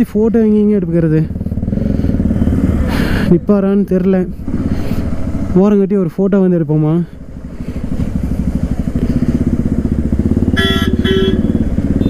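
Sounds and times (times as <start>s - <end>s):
motorcycle engine running: 0.0s - 12.0s
vehicle horn beeps: 10.5s - 12.0s.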